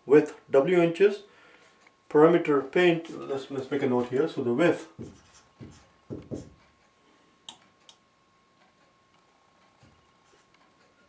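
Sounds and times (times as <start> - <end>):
marker writing on whiteboard: 5.0 - 6.8.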